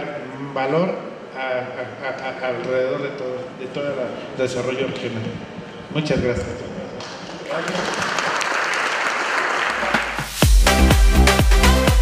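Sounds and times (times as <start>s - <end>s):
audience applauding: 7.0s - 10.4s
electronic dance music: 9.7s - 12.0s.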